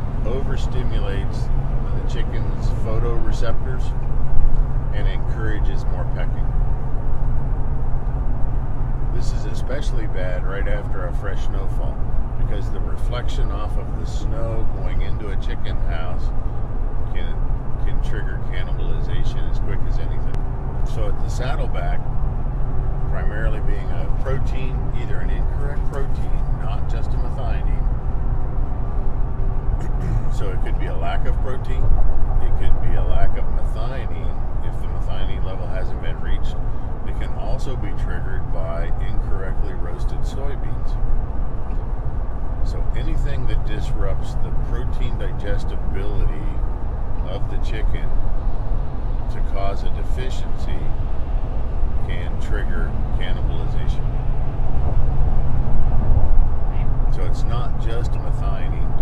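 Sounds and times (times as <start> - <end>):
steady low rumble: 0.0 - 59.0
man talking: 0.1 - 4.0, 4.9 - 6.5, 9.1 - 16.3, 17.1 - 22.1, 23.1 - 27.9, 29.8 - 41.0, 42.6 - 48.2, 49.2 - 51.0, 52.0 - 54.0, 56.8 - 59.0
faint voice: 29.8 - 31.7.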